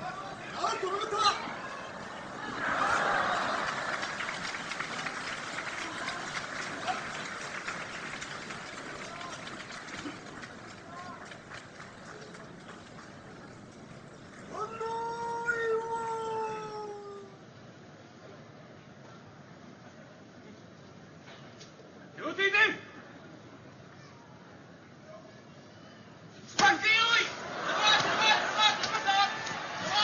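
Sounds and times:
crowd cheering and applauding: 0.0s - 15.9s, 27.6s - 30.0s.

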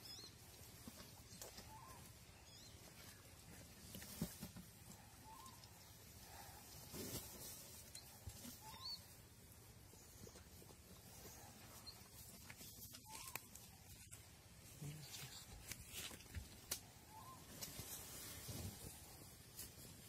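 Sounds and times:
bird chirps: 1.3s - 3.2s, 5.2s - 5.8s, 7.8s - 9.2s, 11.2s - 14.1s, 17.1s - 17.7s.

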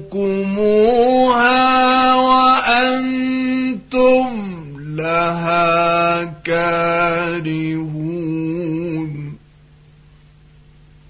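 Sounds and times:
man chanting melodically: 0.0s - 9.4s.

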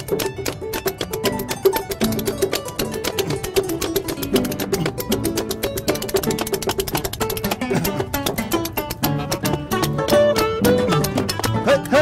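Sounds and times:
harp: 0.0s - 12.0s
plucked double bass: 0.0s - 12.0s
spoons clicking: 0.0s - 12.0s.

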